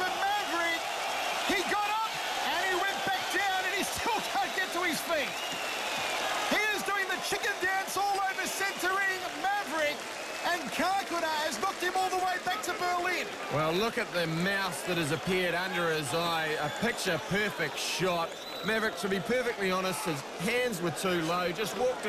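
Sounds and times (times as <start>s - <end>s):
man talking: 0.0s - 0.8s, 1.5s - 5.3s, 6.5s - 22.0s
arena crowd noise: 0.0s - 22.0s.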